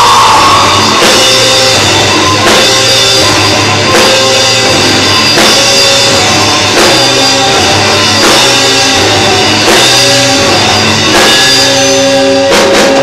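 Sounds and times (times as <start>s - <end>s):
rock band playing live: 0.0s - 13.0s.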